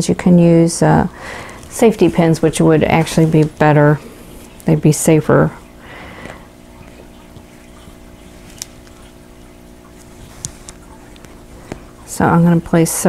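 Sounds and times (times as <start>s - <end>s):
low room hum: 0.0s - 13.0s
fabric rustling: 1.3s - 4.7s, 6.8s - 12.2s.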